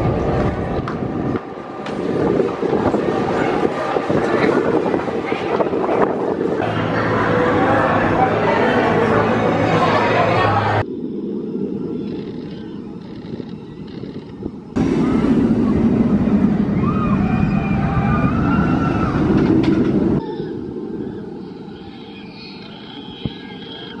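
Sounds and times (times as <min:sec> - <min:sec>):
roller coaster rushing on track: 0:00.0 - 0:24.0.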